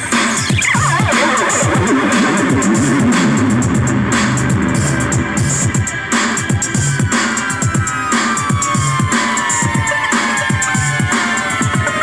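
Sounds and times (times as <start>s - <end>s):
drum machine beat: 0.0s - 12.0s
warbling synth line: 0.4s - 5.8s.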